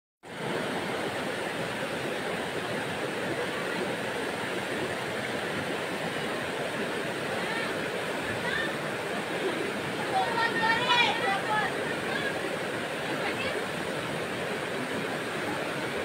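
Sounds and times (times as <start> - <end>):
river running over rocks: 0.2 - 16.0.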